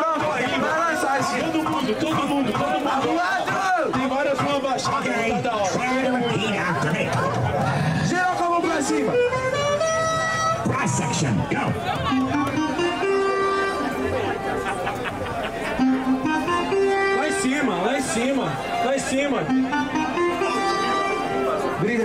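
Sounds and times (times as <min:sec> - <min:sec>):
rap instrumental beat: 0:00.0 - 0:13.3
crowd voices: 0:00.0 - 0:22.0.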